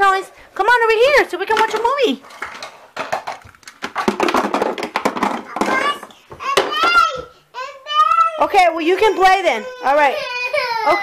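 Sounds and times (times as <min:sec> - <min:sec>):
plastic toy blocks clattering: 0:01.5 - 0:07.1.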